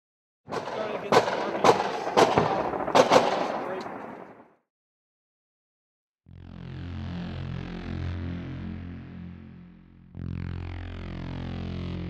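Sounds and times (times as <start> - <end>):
gunshots: 0.5 - 4.5.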